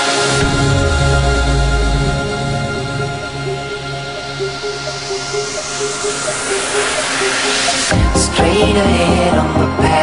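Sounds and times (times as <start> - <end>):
hissing noise sweep: 0.0 - 8.1
held synth notes: 0.0 - 9.8.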